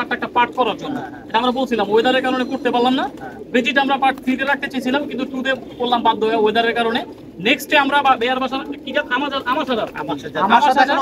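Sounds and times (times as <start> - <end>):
man talking: 0.0 - 11.0
pigeons cooing: 0.0 - 11.0.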